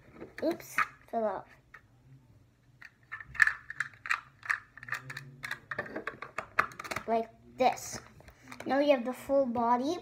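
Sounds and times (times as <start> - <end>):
plastic bricks clicking: 2.8 - 7.1.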